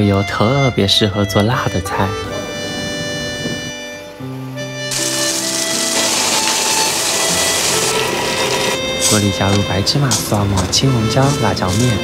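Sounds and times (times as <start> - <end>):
background music with held notes: 0.0 - 12.0
chicken wings deep-frying in oil: 4.9 - 9.1.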